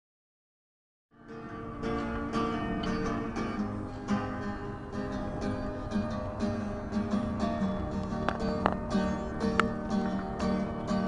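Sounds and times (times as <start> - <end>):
acoustic guitar chords plucked: 1.1 - 11.0.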